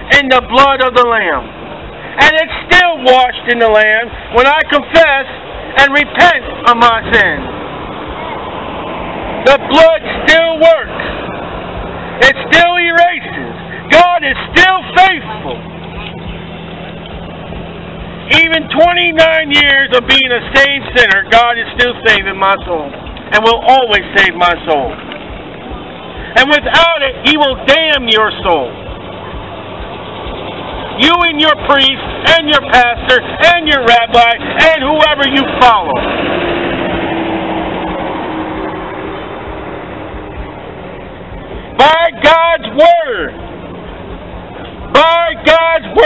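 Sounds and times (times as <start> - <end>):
low mechanical hum: 0.0 - 46.0
outdoor background noise: 0.0 - 46.0
vehicle engine passing by: 4.0 - 46.0.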